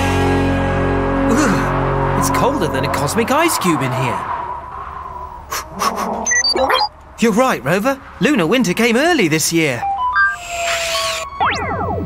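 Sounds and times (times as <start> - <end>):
growly electronic bleep: 5.1 - 6.9, 10.0 - 12.0
high electronic beeps: 6.2 - 6.9, 9.8 - 12.0.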